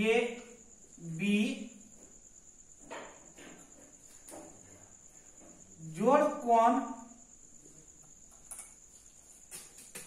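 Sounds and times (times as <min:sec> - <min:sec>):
faint high-pitched whine: 0:00.0 - 0:10.0.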